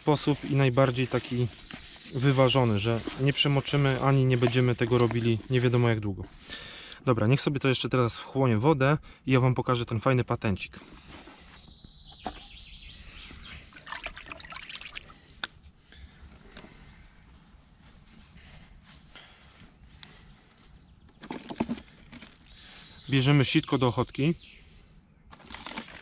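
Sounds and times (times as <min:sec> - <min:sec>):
hands working bait in bucket: 0:00.0 - 0:06.5, 0:25.3 - 0:26.0
rummaging in a bucket: 0:00.1 - 0:06.4, 0:21.1 - 0:22.5, 0:25.3 - 0:26.0.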